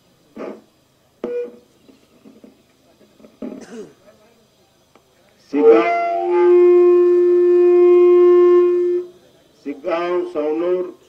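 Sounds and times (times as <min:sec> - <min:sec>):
person speaking over public address: 0:09.2 - 0:11.0.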